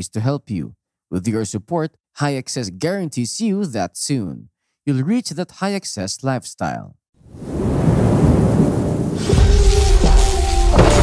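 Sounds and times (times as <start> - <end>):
thunder-like rumbling: 7.4 - 11.0.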